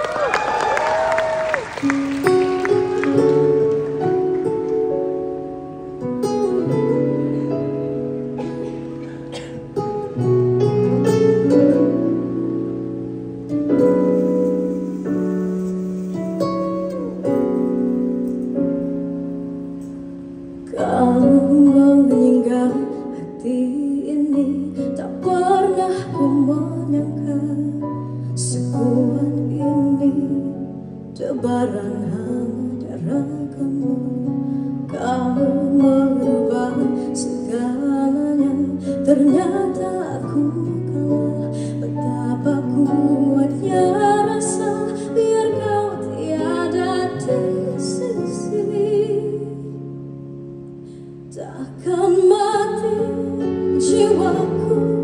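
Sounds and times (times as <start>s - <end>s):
slow ballad with guitar: 1.8s - 55.0s
woman singing into microphone: 20.6s - 49.9s, 51.2s - 55.0s.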